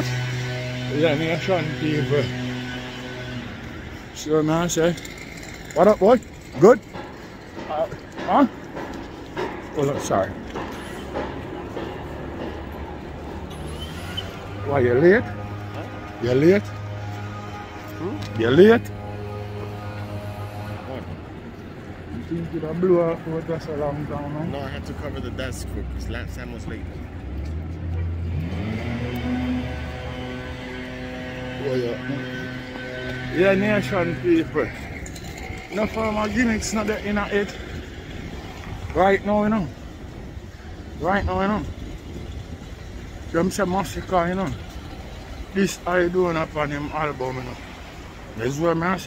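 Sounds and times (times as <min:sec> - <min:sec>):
low traffic rumble: 0:00.0 - 0:49.0
street noise: 0:00.0 - 0:49.0.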